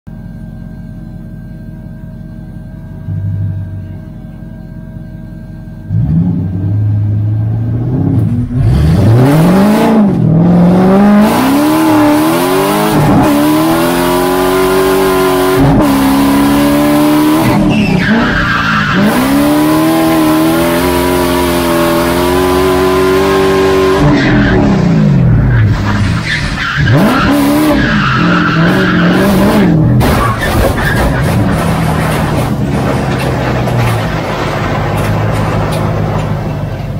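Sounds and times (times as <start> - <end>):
car engine revving: 5.9 - 36.9
tyre squeal: 16.4 - 20.2, 23.3 - 32.1.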